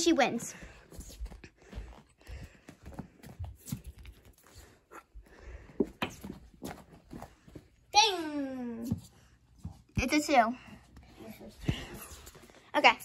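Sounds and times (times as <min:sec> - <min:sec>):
faint footsteps: 0:00.2 - 0:07.9.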